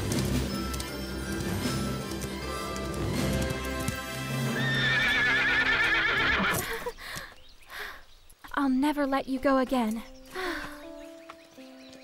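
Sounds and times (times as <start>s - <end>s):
background music: 0.0s - 6.7s, 8.9s - 12.0s
horse whinnying: 4.5s - 6.8s.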